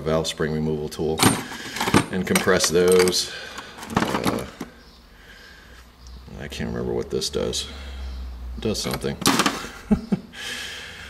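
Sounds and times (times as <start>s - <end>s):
tools clattering in a drawer: 1.2s - 4.7s.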